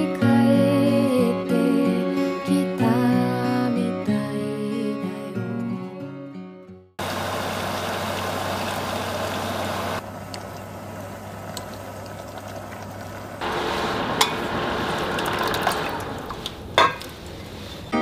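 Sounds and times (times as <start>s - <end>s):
water boiling in a pot: 7.0s - 17.8s
low steady hum: 7.0s - 17.9s.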